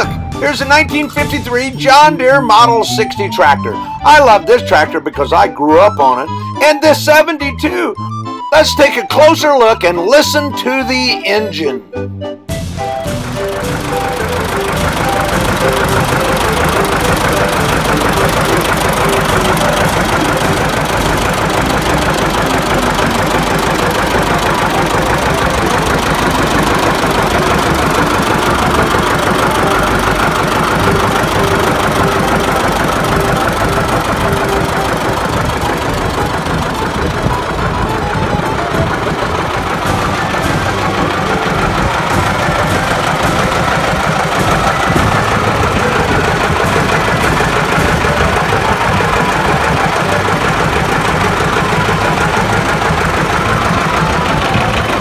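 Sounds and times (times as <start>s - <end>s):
tractor diesel engine idling: 0.0s - 11.8s, 12.5s - 55.0s.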